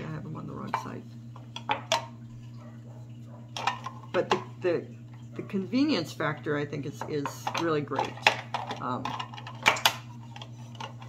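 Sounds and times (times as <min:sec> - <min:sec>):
plastic cups clicking: 0:00.5 - 0:02.1, 0:03.5 - 0:04.8, 0:06.1 - 0:11.0.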